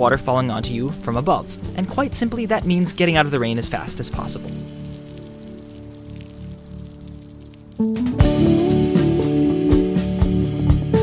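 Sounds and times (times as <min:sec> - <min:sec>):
soft background music notes: 0:00.0 - 0:11.0
steady rain: 0:01.6 - 0:08.2.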